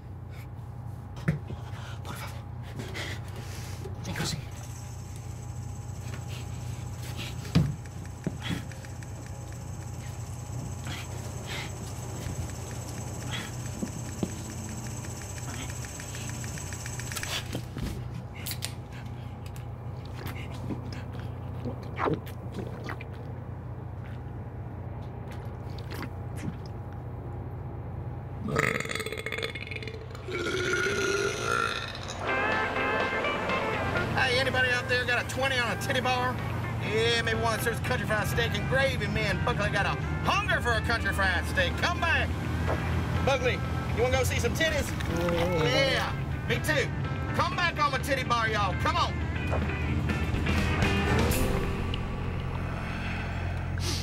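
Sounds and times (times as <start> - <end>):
men burping: 28.4 - 32.3, 45.0 - 46.1
low rumble of moving trailer: 31.5 - 54.0.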